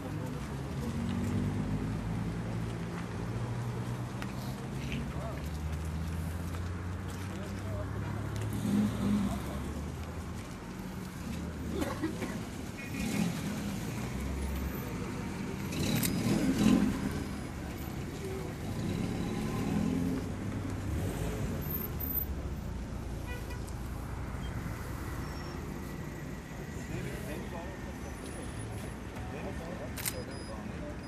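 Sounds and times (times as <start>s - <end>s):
people's voices: 0.0s - 21.8s, 24.8s - 31.0s
road traffic rumble: 0.0s - 31.0s.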